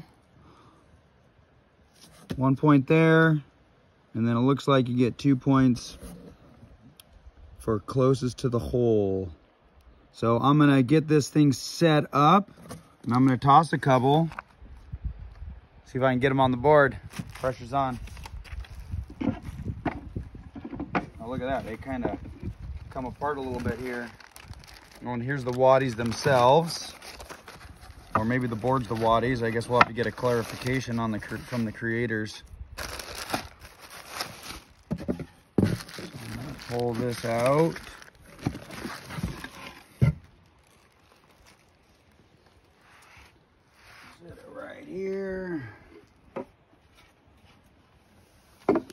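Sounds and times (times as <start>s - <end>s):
bubble wrap and cardboard rustling: 17.0s - 20.2s, 21.2s - 44.2s.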